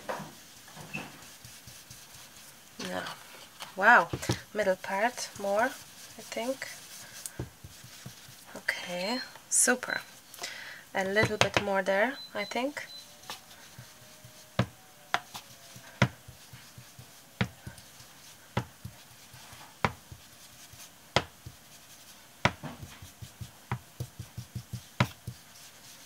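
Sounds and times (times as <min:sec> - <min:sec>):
ink tool tapping on paper: 0:11.1 - 0:11.7, 0:21.2 - 0:21.6, 0:22.4 - 0:25.5.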